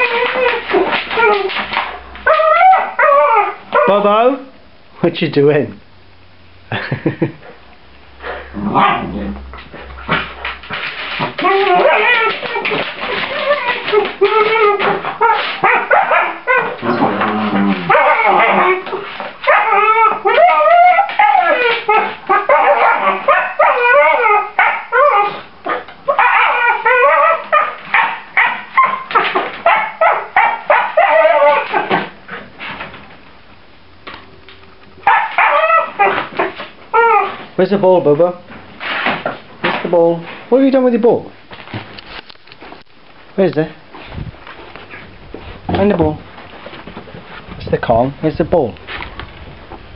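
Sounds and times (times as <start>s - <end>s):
puppies whining and yipping: 0.0s - 3.7s, 11.3s - 16.9s, 17.8s - 25.4s, 26.1s - 27.8s, 28.4s - 32.0s, 35.1s - 37.4s.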